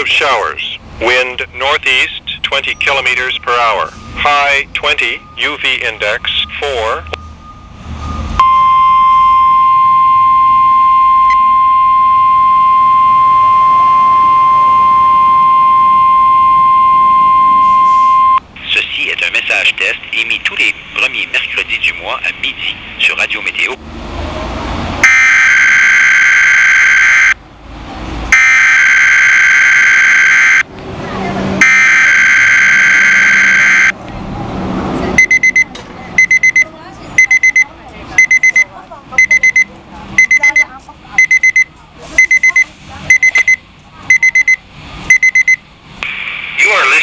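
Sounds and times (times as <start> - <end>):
alert alarm beeping: 1.7 - 18.4, 25.0 - 27.4, 28.4 - 30.6, 31.6 - 34.0, 35.2 - 45.6
harsh buzzing data tones: 31.6 - 34.0.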